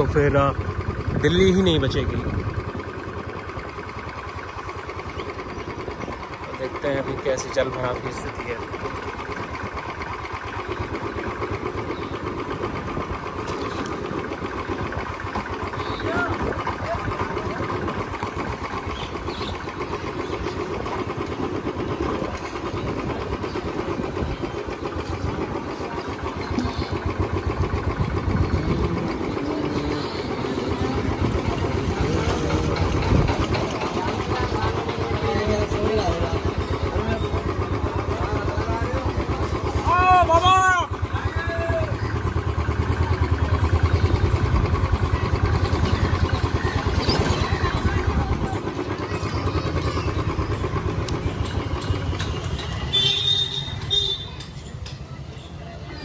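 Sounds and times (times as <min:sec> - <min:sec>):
motorcycle engine and road noise: 0:00.0 - 0:56.0.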